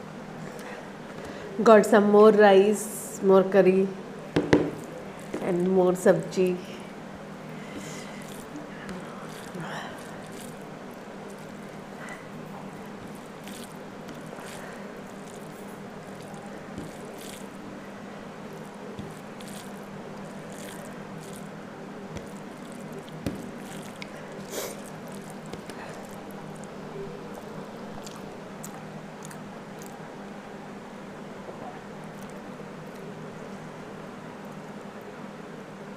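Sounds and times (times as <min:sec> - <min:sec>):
steady low hum: 0:00.0 - 0:35.9
fingers mixing rice on plate: 0:07.5 - 0:17.6, 0:18.5 - 0:29.9
chewing and lip smacks: 0:18.6 - 0:30.0.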